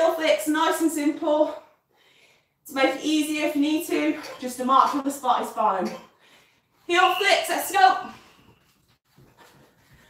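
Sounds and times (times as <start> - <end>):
light breathing: 1.6 - 2.6.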